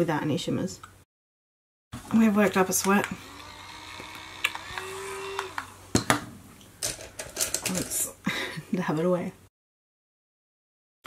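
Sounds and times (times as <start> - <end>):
handheld fan motor hum: 2.1 - 6.0.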